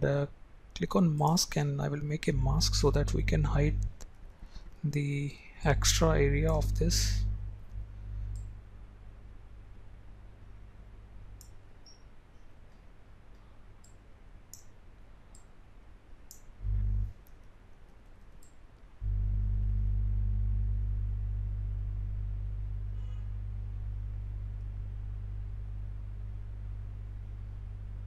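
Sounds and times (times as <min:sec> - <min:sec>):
low hum: 0:01.3 - 0:11.7, 0:16.6 - 0:17.2, 0:19.0 - 0:28.0
computer mouse clicks: 0:11.4 - 0:14.7, 0:17.2 - 0:18.8.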